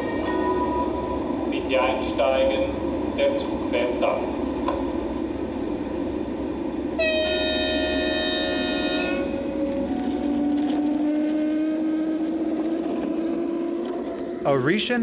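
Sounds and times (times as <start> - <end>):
locomotive motor hum rising: 0.0 - 15.0
model train rumbling on track: 0.0 - 15.0
two-tone train horn: 7.0 - 14.3.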